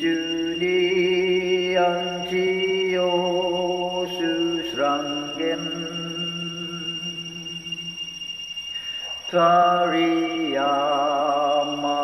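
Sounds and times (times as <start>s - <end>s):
man chanting: 0.0s - 7.7s, 9.0s - 12.0s
steady low tone: 0.0s - 12.0s.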